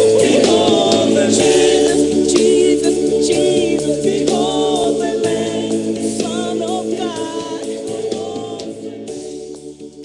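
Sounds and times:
choir singing gospel: 0.0 - 10.0.

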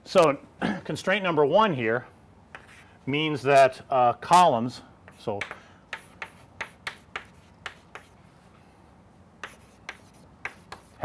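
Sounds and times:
chalk tapping on chalkboard: 2.5 - 2.8, 5.0 - 8.2, 9.4 - 11.0.

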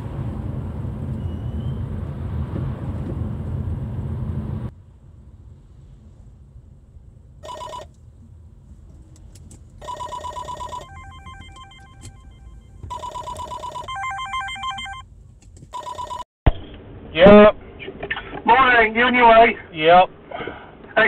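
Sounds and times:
road rumble in car cabin: 0.0 - 10.0, 10.6 - 15.8
phone ringtone: 7.4 - 7.9, 9.8 - 15.0, 15.8 - 16.3
pitched beeping pattern: 9.9 - 15.0.

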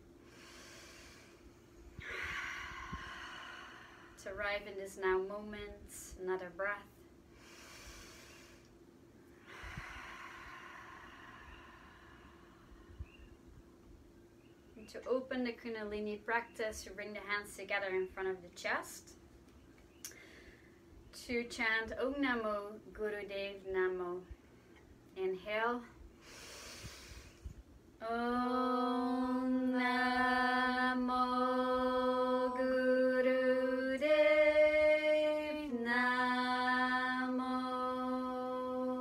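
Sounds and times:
woman breathing deeply: 0.2 - 4.3, 7.2 - 13.8, 20.1 - 20.9, 26.1 - 27.7.

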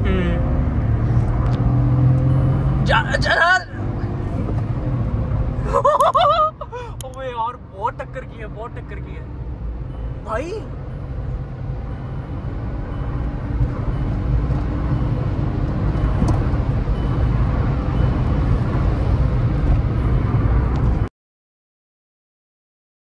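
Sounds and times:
car cabin rumble: 12.6 - 21.0.

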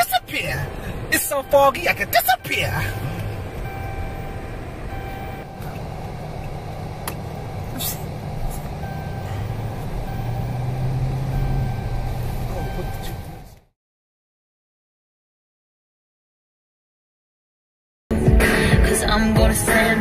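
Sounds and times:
engine and road rumble: 0.0 - 13.8, 18.1 - 20.0.

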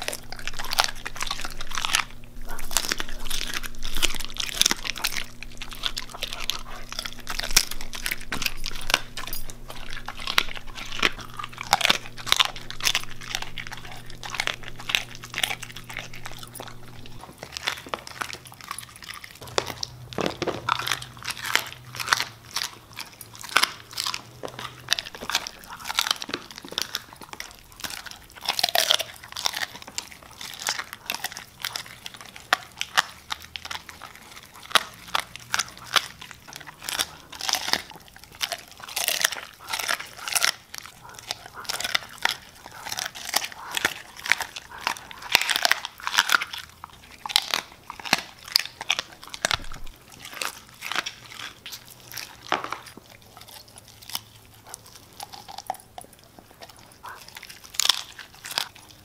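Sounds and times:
dog chewing raw fish: 0.0 - 59.0.

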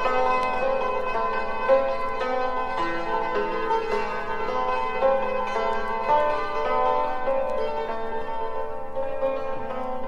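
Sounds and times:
hammered dulcimer solo: 0.0 - 10.0.

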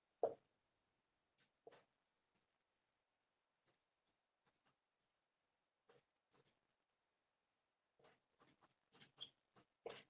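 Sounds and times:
marker writing on whiteboard: 1.4 - 2.0, 5.8 - 6.8, 8.0 - 10.0.

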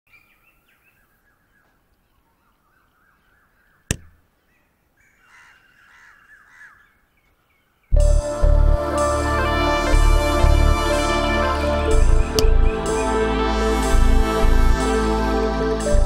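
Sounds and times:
harsh bird calls: 0.1 - 8.0
small birds chirping: 0.1 - 8.0.

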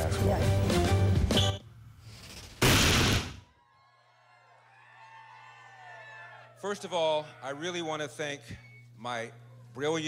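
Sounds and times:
faint electrical hum: 3.5 - 10.0.

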